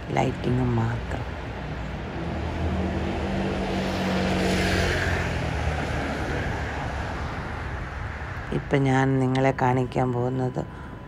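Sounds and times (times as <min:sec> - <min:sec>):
road noise: 0:00.0 - 0:11.0
vehicle engine hum: 0:00.0 - 0:11.0.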